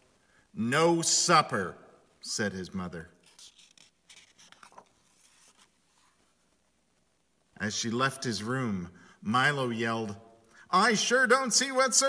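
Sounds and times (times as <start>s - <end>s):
paper page turning: 3.2s - 6.3s.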